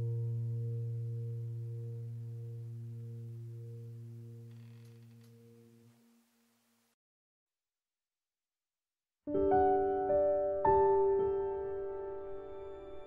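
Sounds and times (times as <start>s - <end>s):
low piano note: 0.0s - 5.9s.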